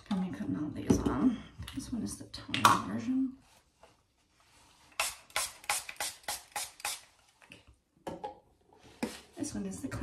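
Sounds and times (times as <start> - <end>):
spray bottle spraying: 4.9 - 7.1.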